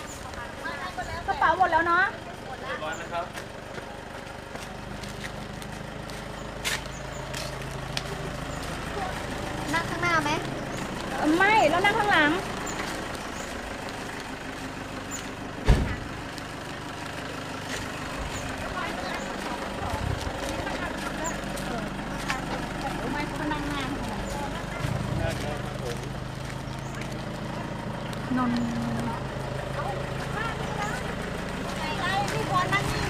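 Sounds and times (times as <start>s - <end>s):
people talking: 0.0s - 4.0s, 8.9s - 10.5s, 11.1s - 12.5s, 18.2s - 26.2s, 28.2s - 33.0s
vehicle engine idling: 0.0s - 33.0s
sharp thump: 15.6s - 16.1s.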